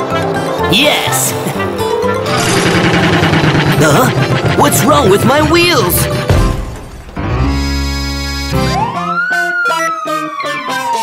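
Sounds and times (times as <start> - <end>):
sweeping siren tone: 8.7 - 11.0.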